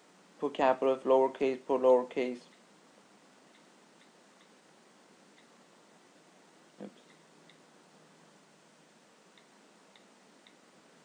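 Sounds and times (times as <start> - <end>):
faint ticks: 9.3 - 10.6.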